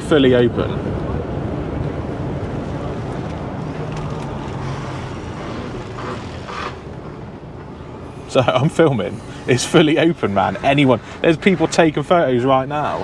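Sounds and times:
diesel engine drone: 0.0s - 13.0s
road noise: 0.0s - 13.0s.

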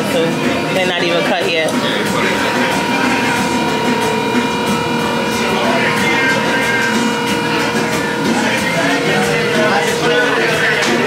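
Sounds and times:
faint voices: 0.0s - 11.0s
steady machine hum: 0.0s - 11.0s.

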